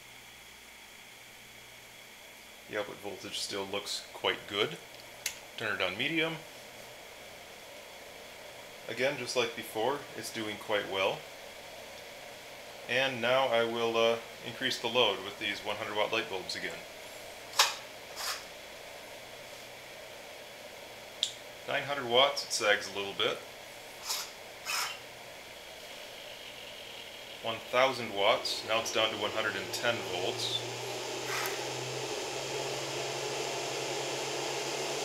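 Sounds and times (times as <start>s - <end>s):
fan noise: 0.0s - 35.0s
low electrical hum: 0.0s - 35.0s
light bulb scraping in socket: 24.0s - 25.0s.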